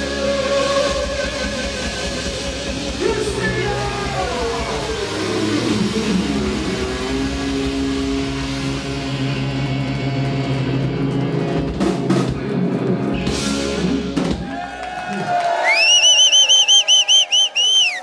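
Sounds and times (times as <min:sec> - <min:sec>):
heavy metal band playing: 0:00.0 - 0:15.2.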